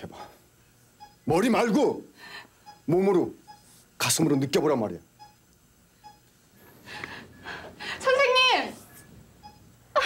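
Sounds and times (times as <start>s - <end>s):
faint monitor beeps: 0.9s - 6.7s, 8.9s - 10.0s.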